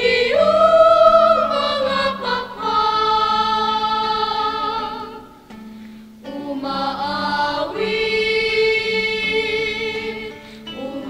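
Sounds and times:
choir singing a hymn: 0.0 - 5.5, 6.2 - 11.0.

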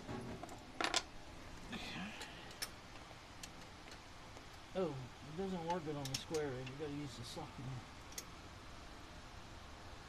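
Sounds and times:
steel hardware clinking: 5.6 - 7.0.

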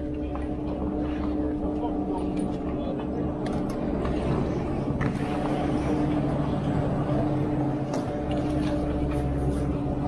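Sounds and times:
chairlift machinery humming: 0.0 - 10.0.

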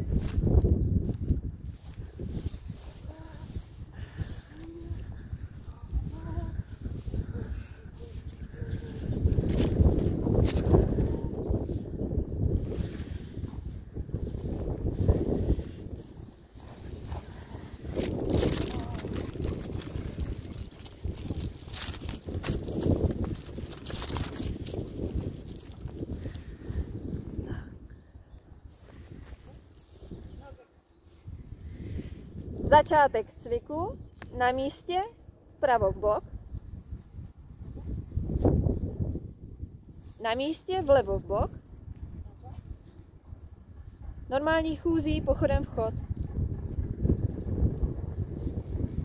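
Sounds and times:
wind buffeting microphone: 0.0 - 49.0
faint voices: 2.7 - 9.4, 17.3 - 20.2.

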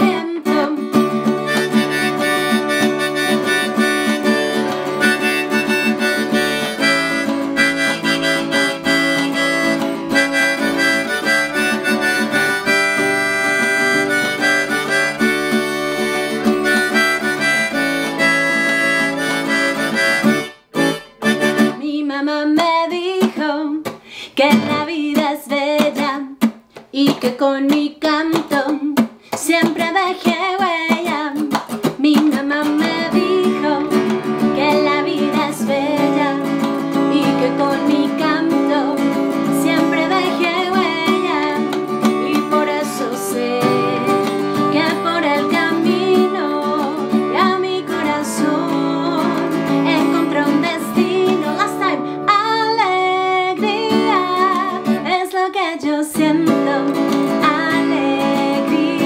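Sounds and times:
woman singing: 0.0 - 20.3, 21.4 - 59.0
acoustic guitar strumming: 0.0 - 21.9, 24.4 - 26.6, 28.4 - 55.2, 56.2 - 59.0
harmonica playing held chords: 1.2 - 21.8, 38.5 - 52.1.

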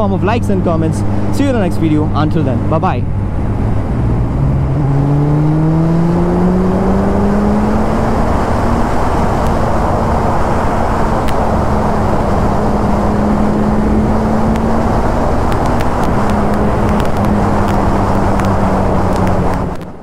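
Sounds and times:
road noise: 0.0 - 20.0
wind noise: 0.0 - 20.0.

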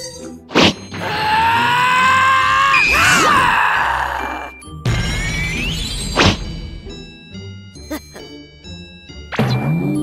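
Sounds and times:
high-pitched scream: 1.0 - 4.5.

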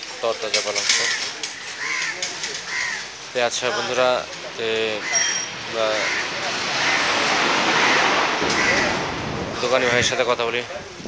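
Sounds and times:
faint voices: 0.0 - 11.0
passing motor vehicle rushing: 5.4 - 9.9.

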